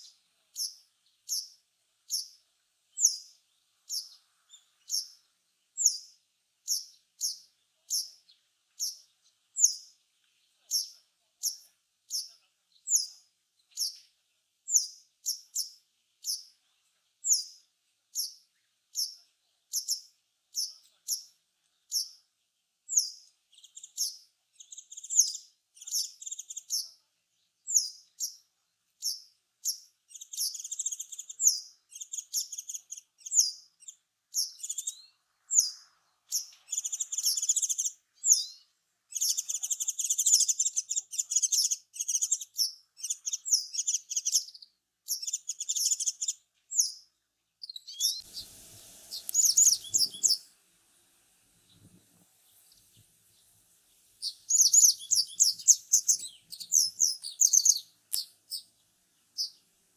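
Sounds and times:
bird twittering song: 0.0s - 50.6s, 51.6s - 59.8s
wagtail calling: 48.0s - 50.5s, 54.2s - 58.7s.

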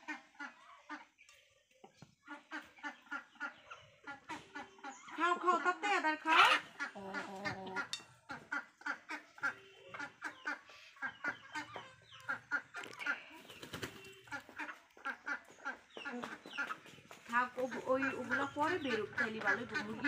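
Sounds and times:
hens and rooster clucking: 0.0s - 20.0s.

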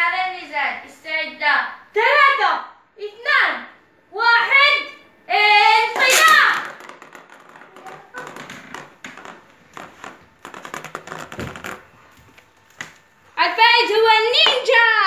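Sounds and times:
children calling out: 5.4s - 6.7s
spinning tops clattering in plastic bowl: 6.0s - 8.0s.

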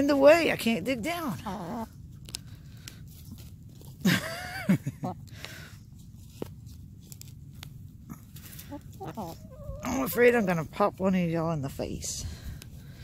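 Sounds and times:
hens scratching in soil: 0.0s - 13.0s
hen clucking: 8.6s - 11.1s.

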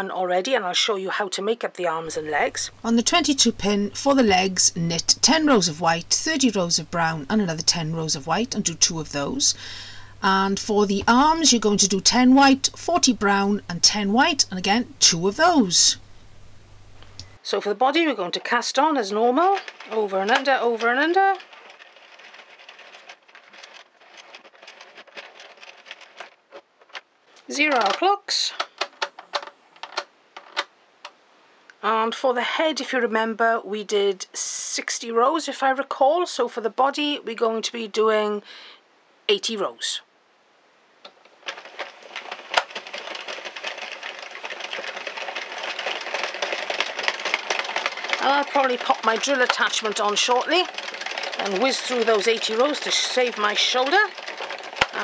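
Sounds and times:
knitting machine needles clattering: 2.1s - 17.4s, 19.4s - 30.7s, 41.3s - 55.0s.

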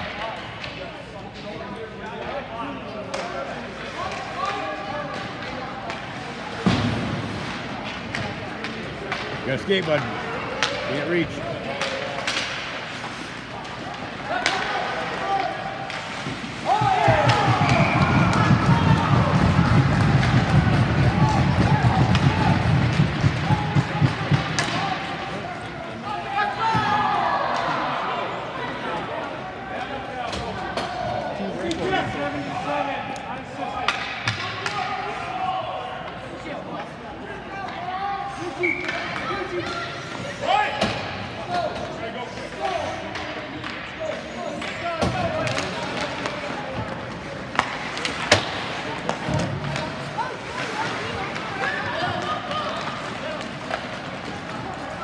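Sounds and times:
players shouting: 13.6s - 32.6s
sticks and pucks knocking boards: 14.4s - 25.1s, 44.6s - 50.1s
spectators cheering and yelling: 16.6s - 24.5s
rapid clapping and banging: 16.9s - 24.6s.

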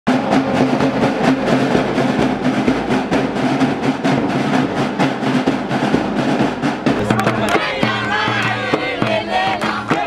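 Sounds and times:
marching snare drums: 0.1s - 10.0s.

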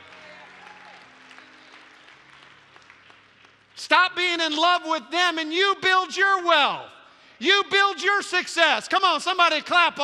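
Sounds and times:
faint audience applause: 0.0s - 3.8s.

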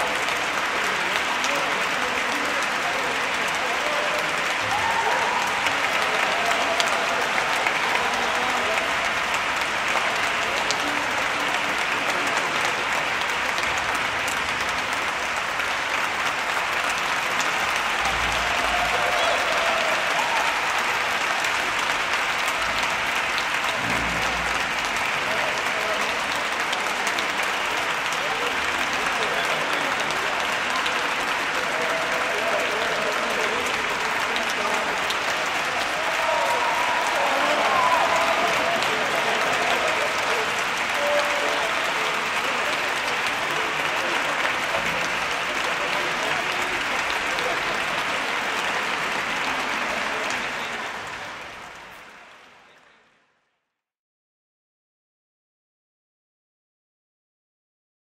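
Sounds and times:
audience applauding: 0.0s - 53.0s.

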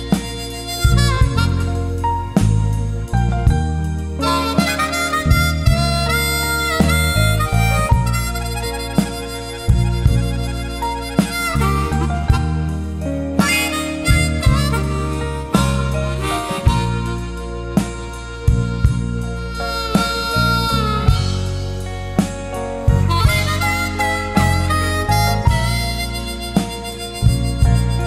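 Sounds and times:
bass line: 0.0s - 28.0s
harmonica solo with bent notes: 0.0s - 28.0s
rhythmic backing: 0.0s - 28.0s.

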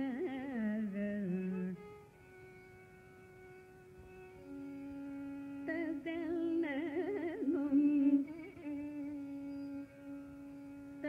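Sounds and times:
woman singing with pitch glides: 0.0s - 2.0s, 5.1s - 10.2s.

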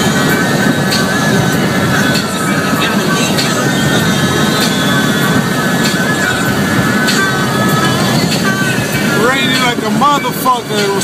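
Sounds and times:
car radio music: 0.0s - 11.0s
road and tyre noise: 0.0s - 11.0s.

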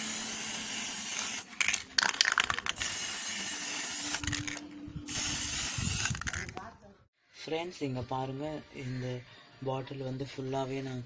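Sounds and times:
spray paint can hissing: 0.0s - 6.6s.

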